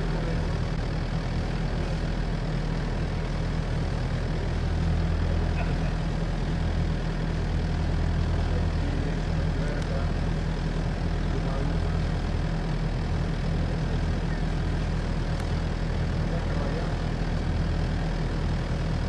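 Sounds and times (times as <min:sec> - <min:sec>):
low mechanical drone: 0:00.0 - 0:19.0.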